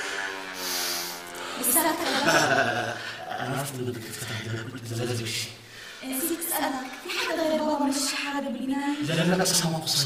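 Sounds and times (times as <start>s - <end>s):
man speaking: 3.2s - 5.6s, 9.0s - 10.0s.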